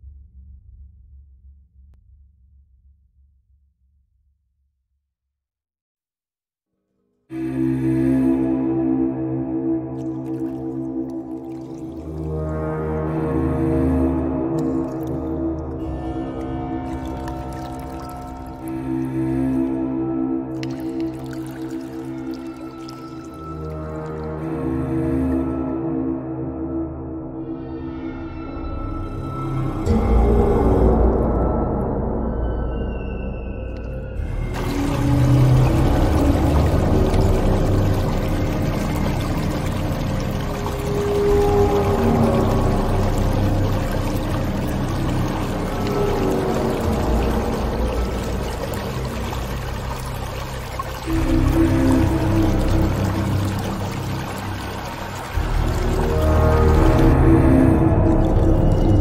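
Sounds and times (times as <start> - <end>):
ambient droning music: 7.3 - 59.0
water trickling and dripping: 9.6 - 25.6, 33.6 - 59.0
stream running over stones: 9.9 - 13.9, 14.6 - 19.7, 20.5 - 24.8, 33.8 - 59.0.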